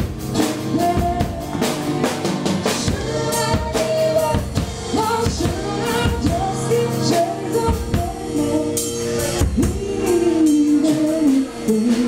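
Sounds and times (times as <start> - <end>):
person singing: 0.4 - 12.0.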